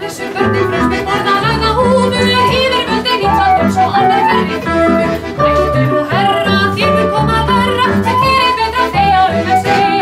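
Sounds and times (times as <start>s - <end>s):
accordion: 0.0s - 10.0s
plucked double bass: 0.0s - 10.0s
woman singing with vibrato: 0.0s - 10.0s
flute: 2.1s - 10.0s.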